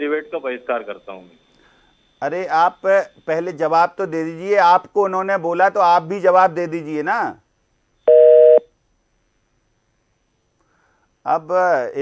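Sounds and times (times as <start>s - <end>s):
telephone busy tone beep: 8.1s - 8.6s.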